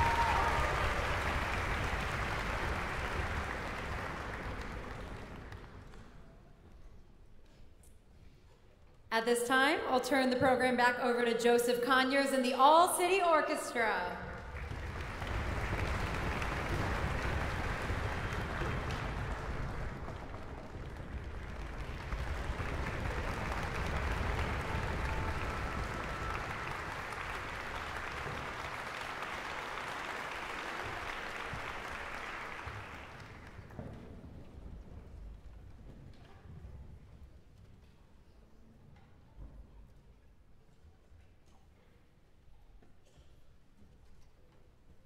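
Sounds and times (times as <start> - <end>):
audience applauding: 0.0 - 6.2, 14.4 - 34.0.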